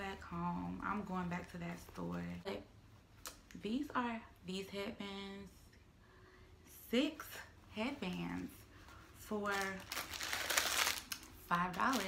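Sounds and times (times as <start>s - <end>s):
plastic packaging crinkling: 9.3s - 12.0s.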